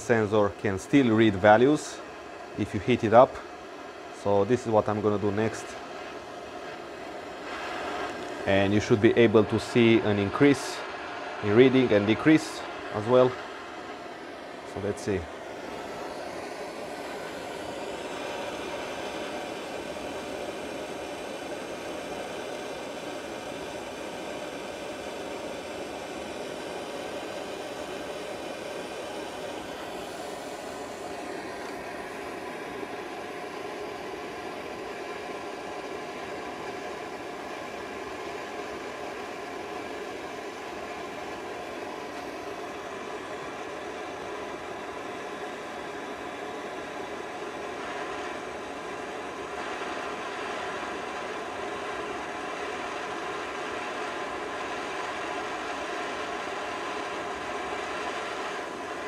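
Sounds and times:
gas torch flame burning: 0.0s - 59.0s.

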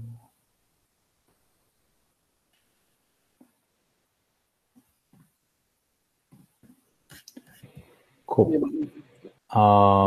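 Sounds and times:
faint indistinct speech: 9.6s - 10.0s.

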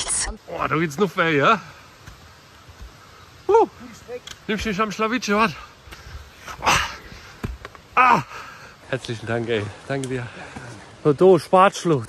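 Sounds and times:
person straining ah: 6.3s - 8.8s.

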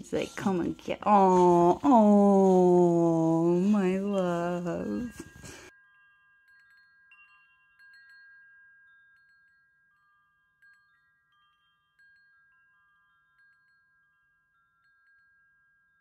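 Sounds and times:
faint wind chimes: 0.0s - 16.0s.

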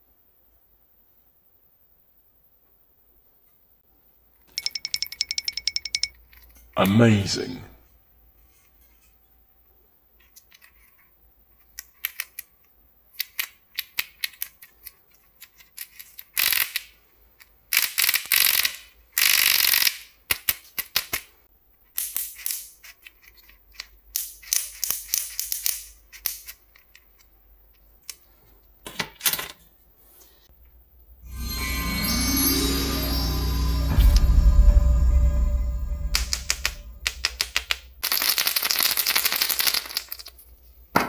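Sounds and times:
plastic toy clicks and rattles: 11.8s - 12.5s, 13.2s - 21.3s, 38.0s - 40.3s.

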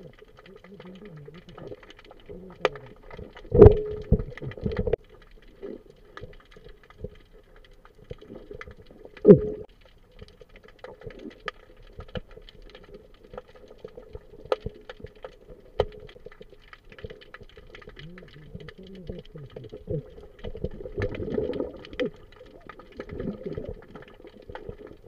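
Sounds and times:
underwater clicks and knocks: 0.0s - 25.0s
muffled voice-like sounds: 18.0s - 20.0s.

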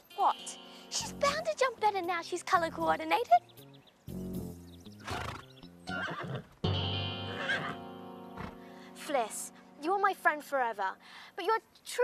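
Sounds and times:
background music: 0.0s - 12.0s
horse whinnying: 5.0s - 6.6s, 7.3s - 7.8s.

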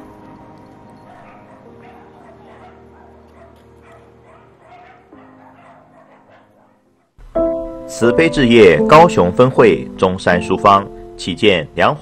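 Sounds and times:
dogs yipping and whimpering: 0.0s - 7.1s
soft background music chords: 7.2s - 12.0s.

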